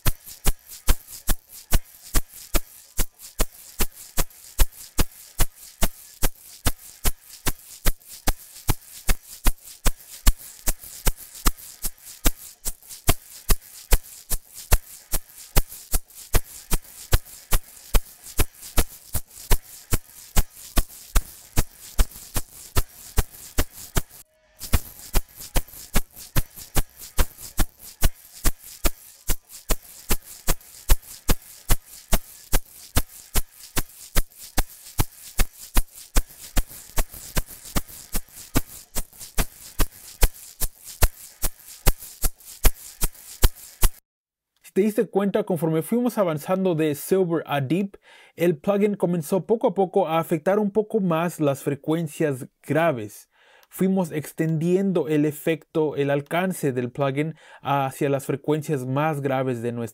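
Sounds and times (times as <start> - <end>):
egg shaker shaken: 0.0 - 44.0, 53.7 - 55.3.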